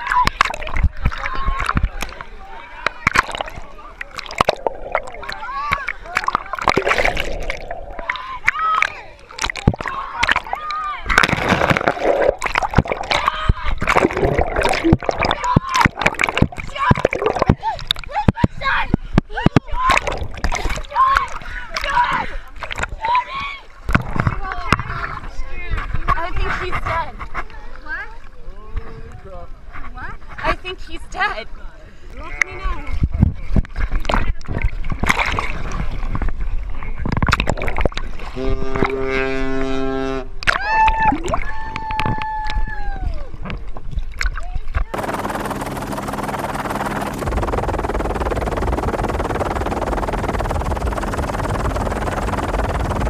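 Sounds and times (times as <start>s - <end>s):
sea water splashing: 0.0s - 18.2s, 19.7s - 24.8s, 33.7s - 39.6s, 43.4s - 53.0s
ship's horn low blast: 38.2s - 40.4s.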